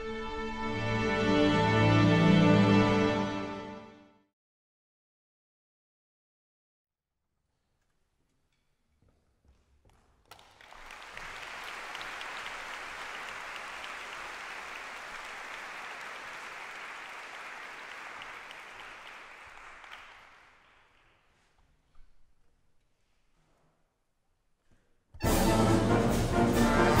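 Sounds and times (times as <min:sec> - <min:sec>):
audience applauding: 0:10.3 - 0:21.1.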